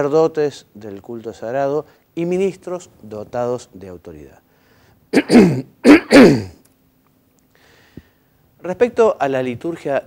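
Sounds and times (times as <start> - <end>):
man coughing: 5.2 - 6.6.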